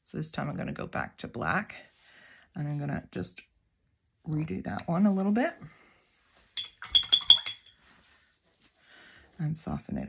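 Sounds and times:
paintbrush clinking glass jar: 0:06.5 - 0:08.0.

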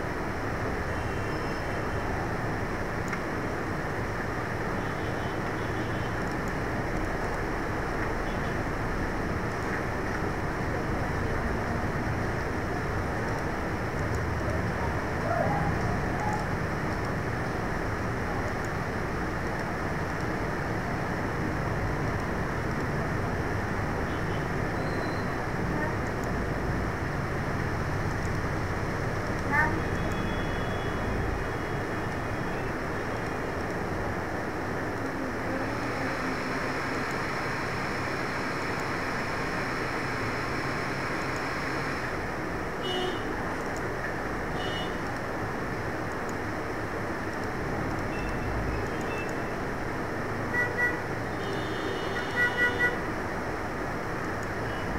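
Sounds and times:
steady background noise: 0:00.0 - 0:54.9.

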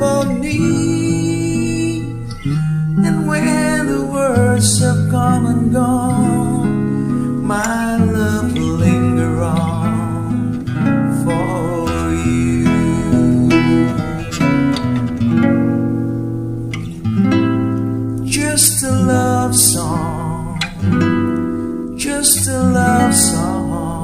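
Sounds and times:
acoustic guitar ballad: 0:00.0 - 0:24.0.

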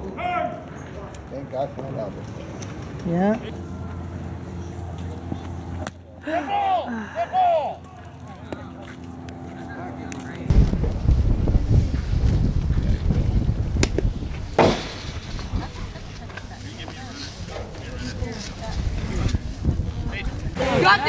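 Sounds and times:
wind buffeting microphone: 0:10.5 - 0:21.0.

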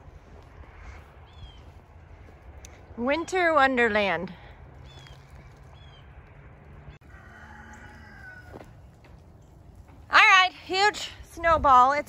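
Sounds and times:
rooster crowing faintly: 0:07.0 - 0:08.9.

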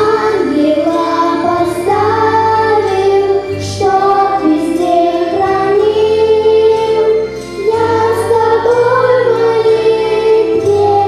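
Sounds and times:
children singing: 0:00.0 - 0:11.0
instrumental accompaniment: 0:00.0 - 0:11.0.

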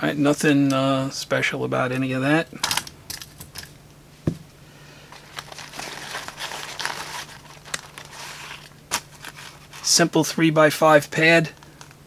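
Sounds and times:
hands rustling through fabric pouch: 0:05.1 - 0:10.0.

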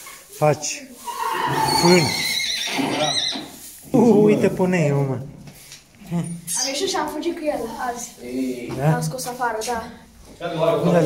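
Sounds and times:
horse whinnying: 0:01.0 - 0:04.4.

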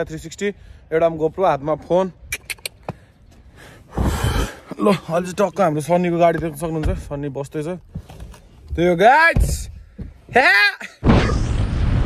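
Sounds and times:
man's sharp breath: 0:02.8 - 0:04.8.

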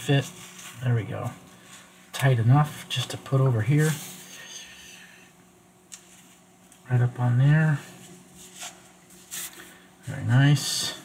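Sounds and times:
fabric rustling against lens: 0:08.0 - 0:09.8.

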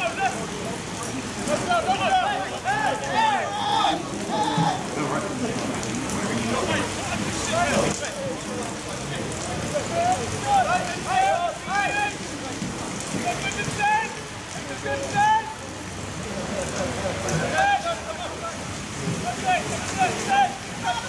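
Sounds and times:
voices shouting: 0:00.0 - 0:05.2, 0:09.6 - 0:21.0
steady rain falling: 0:00.0 - 0:21.0.

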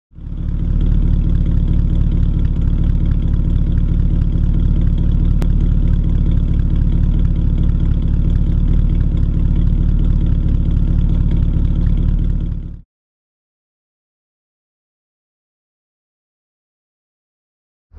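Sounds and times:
car engine idling: 0:00.2 - 0:12.8.

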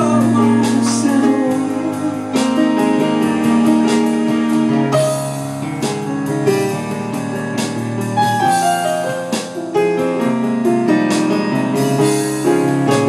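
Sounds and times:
digital piano playing chords: 0:00.0 - 0:13.0.

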